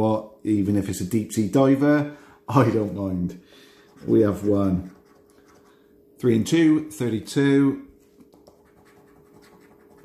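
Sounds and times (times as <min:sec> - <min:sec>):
coin scratching scratch card: 0:03.9 - 0:05.7, 0:08.3 - 0:10.0.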